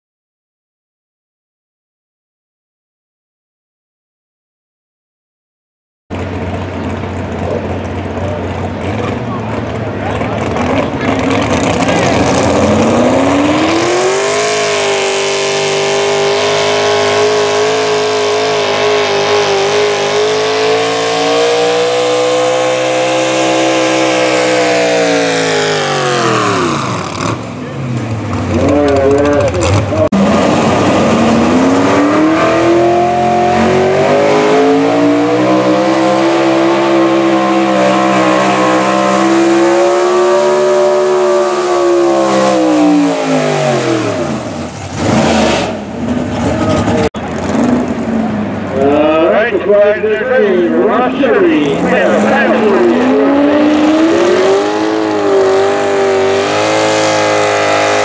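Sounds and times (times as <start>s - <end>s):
truck engine at high revs: 6.1s - 58.0s.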